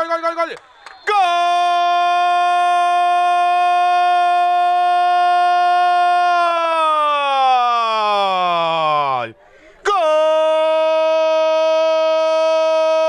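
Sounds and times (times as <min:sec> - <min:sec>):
man shouting long goal cry: 0:01.0 - 0:13.0.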